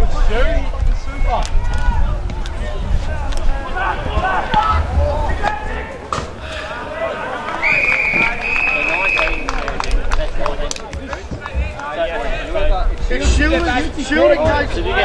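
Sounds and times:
wind rumbling on microphone: 0.0 - 6.5
people shouting: 1.2 - 9.5
whistle blast: 7.6 - 9.6.

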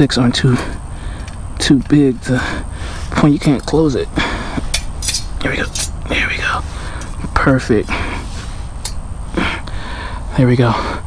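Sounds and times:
low outdoor rumble: 0.0 - 11.0
man snorting breath: 0.5 - 1.4, 2.3 - 3.2, 4.1 - 4.8, 6.6 - 7.2, 7.8 - 11.0.

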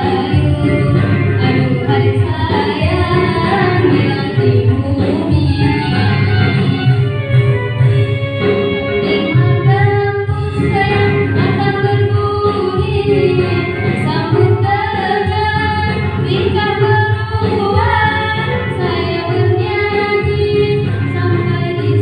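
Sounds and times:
girl singing into a microphone: 0.0 - 7.0, 9.0 - 22.0.

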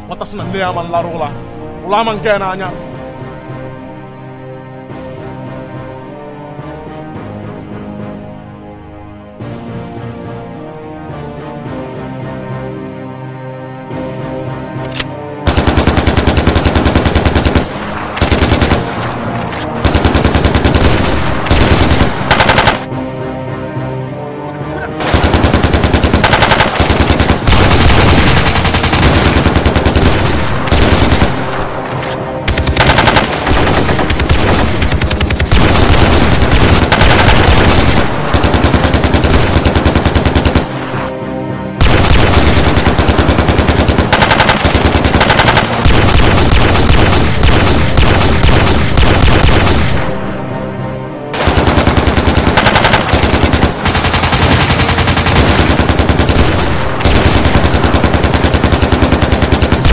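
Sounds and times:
automatic rifle fire: 15.5 - 22.9, 25.0 - 31.7, 32.5 - 41.1, 41.8 - 50.0, 51.4 - 59.9.

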